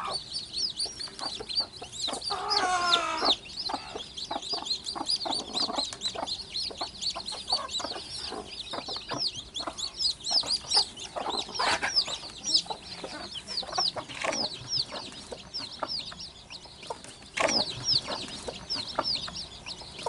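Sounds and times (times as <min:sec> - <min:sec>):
chicks peeping: 0:00.0 - 0:20.0
hen clucking: 0:00.0 - 0:20.0.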